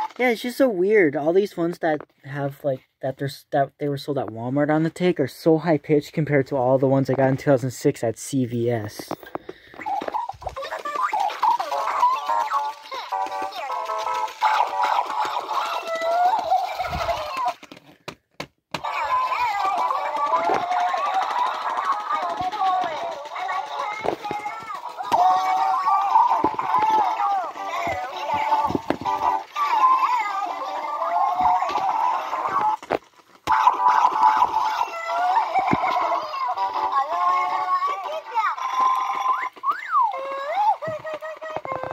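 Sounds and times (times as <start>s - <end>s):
toys chattering in squeaky voices: 0.0s - 1.0s, 8.5s - 17.8s, 18.8s - 41.9s.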